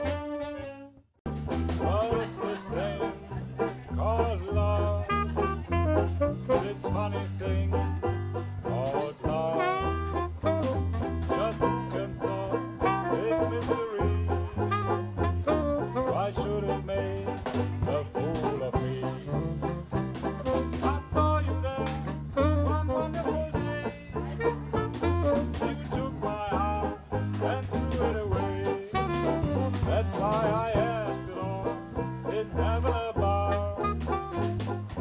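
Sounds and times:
drums keeping a steady beat: 0.0s - 0.5s, 1.3s - 35.0s
saxophone lead line: 0.0s - 2.0s, 4.6s - 35.0s
walking bass: 0.0s - 35.0s
plucked banjo chords: 1.3s - 35.0s.

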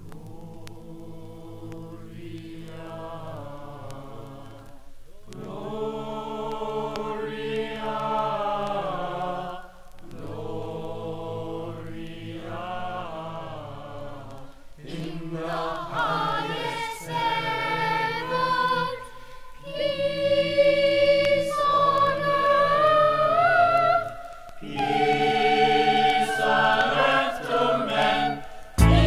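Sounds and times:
choir singing gospel mass: 0.0s - 29.0s.

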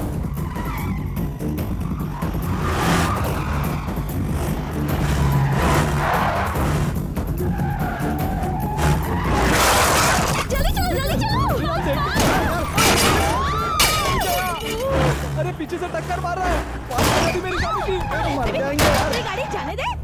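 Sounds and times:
background music: 0.0s - 20.0s
tyres skidding on dirt: 0.0s - 20.0s
van engines running: 0.0s - 20.0s.

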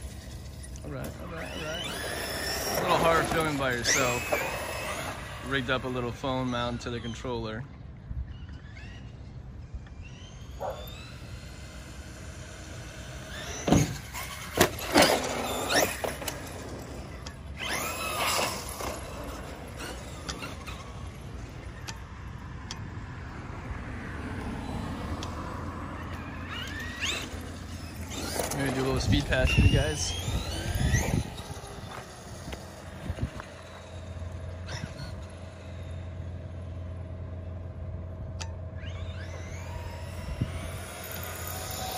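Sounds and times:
rc truck motor whine: 0.0s - 41.9s
tyre squeal: 8.3s - 9.4s, 38.8s - 40.2s.

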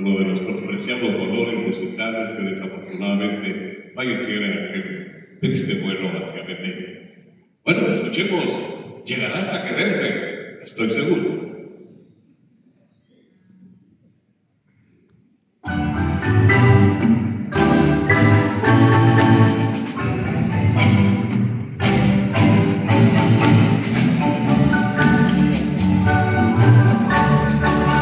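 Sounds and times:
marimba ensemble playing: 15.6s - 28.0s
double bass: 15.7s - 28.0s
drum kit: 15.8s - 28.0s.

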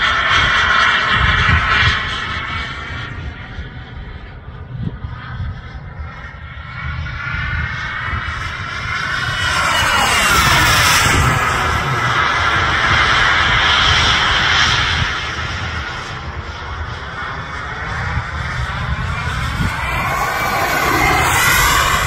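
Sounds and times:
model jet whine flying past: 0.0s - 22.0s.

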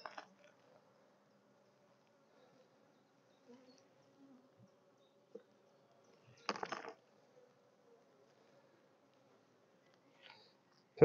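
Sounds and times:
honeybee colony humming: 0.0s - 11.0s.

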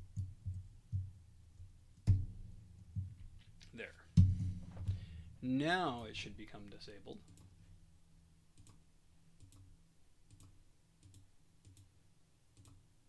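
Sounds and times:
faint computer mouse clicks: 12.6s - 12.8s.

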